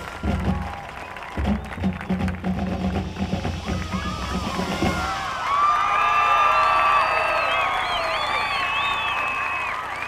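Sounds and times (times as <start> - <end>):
crowd cheering and whooping: 0.0 - 2.4, 3.2 - 10.0
marching band with drums: 0.0 - 6.3.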